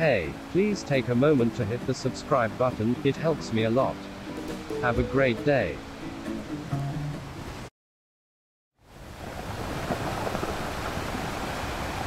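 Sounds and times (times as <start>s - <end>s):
ocean waves breaking: 0.0s - 7.7s.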